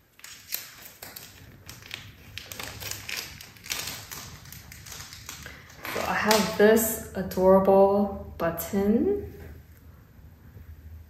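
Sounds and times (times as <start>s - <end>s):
plastic bag crinkling: 0.0s - 7.1s.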